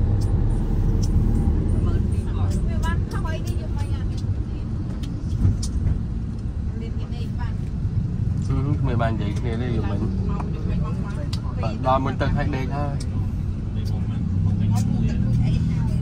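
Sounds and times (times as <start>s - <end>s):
vehicle engine and road noise: 0.0s - 16.0s
vehicles passing close by: 0.0s - 16.0s.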